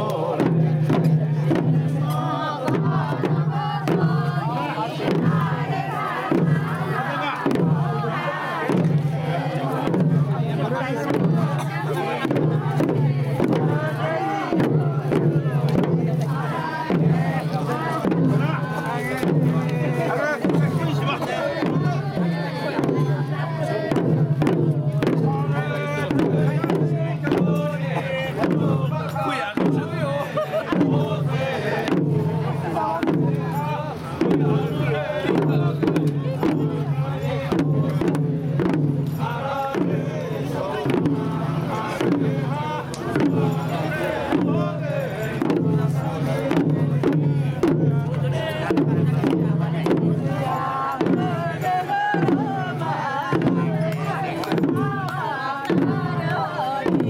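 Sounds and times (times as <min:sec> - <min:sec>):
crowd singing together: 0:00.0 - 0:57.0
hand drums struck with sticks: 0:00.0 - 0:57.0.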